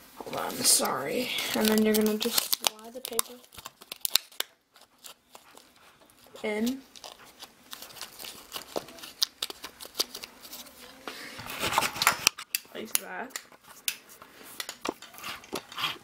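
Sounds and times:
scraping rustle of card: 0.3 - 12.4
paper rustling: 0.3 - 12.5.

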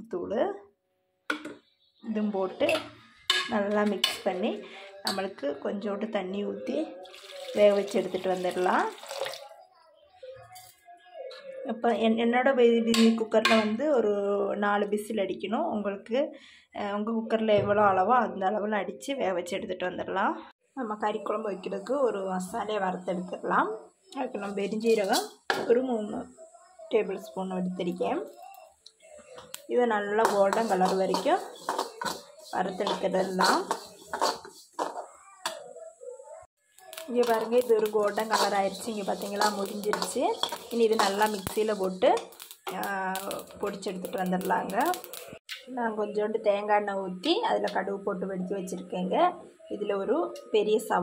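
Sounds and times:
woman talking: 0.0 - 0.6, 2.1 - 2.9, 3.5 - 7.0, 7.6 - 9.0, 11.7 - 28.4, 29.7 - 31.7, 32.4 - 34.0, 36.9 - 45.1, 45.7 - 51.0
metallic clink against a pan: 2.7 - 4.3, 30.2 - 35.6, 36.9 - 45.3
person talking: 29.7 - 36.2, 36.9 - 45.8.

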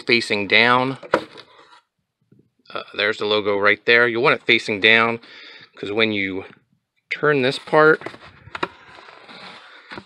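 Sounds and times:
cardboard sliding over cardboard: 8.0 - 10.0.

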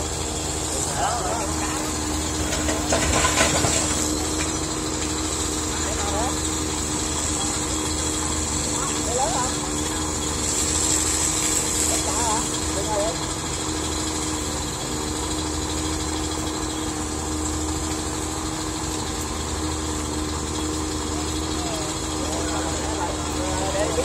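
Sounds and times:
constant high hiss: 0.0 - 24.0
vehicle engine idling: 0.0 - 24.0
faint voices: 0.5 - 13.4, 21.0 - 24.0.

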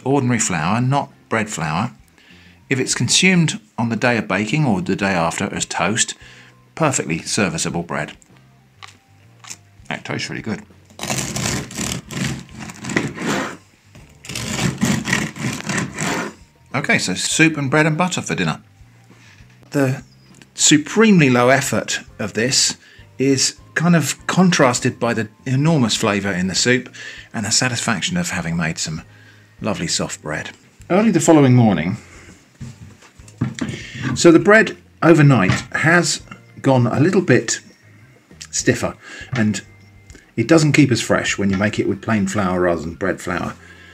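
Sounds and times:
bread knife sawing through crust: 11.0 - 13.6, 14.3 - 16.4
man's voice: 29.6 - 32.0, 33.7 - 37.6, 38.4 - 39.8.

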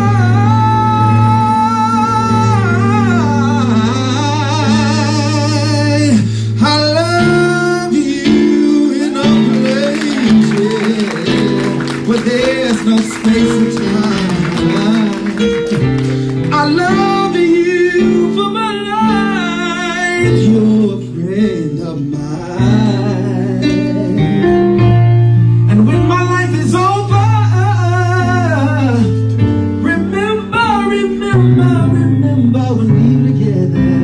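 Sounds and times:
guitar accompaniment: 0.0 - 34.0
low bass notes: 0.0 - 34.0
man singing a slow ballad: 0.0 - 34.0.

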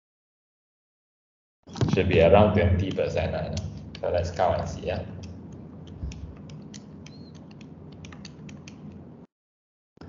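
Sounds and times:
calculator keys clicking: 5.2 - 9.0.

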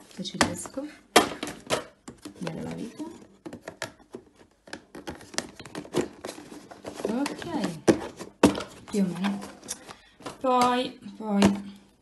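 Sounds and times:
plastic lid knocking and scraping: 1.2 - 10.4.

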